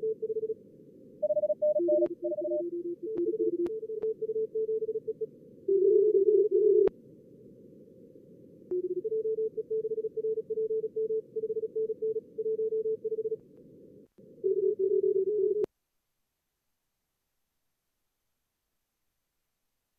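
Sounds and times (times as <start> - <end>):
receiver noise hiss: 0.0 - 19.9
fast morse code tones: 1.2 - 5.1.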